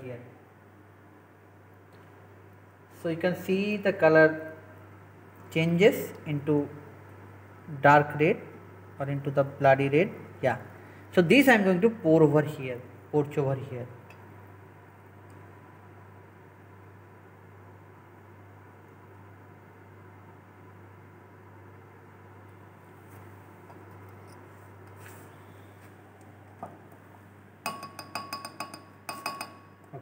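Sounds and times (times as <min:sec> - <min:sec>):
glassware clinking: 0:27.6 - 0:29.8.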